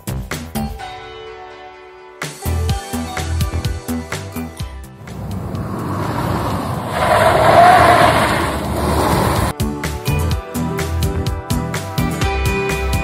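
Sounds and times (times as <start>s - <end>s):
background music with a beat: 0.0s - 5.4s, 9.6s - 13.0s
rushing noise: 5.0s - 9.5s.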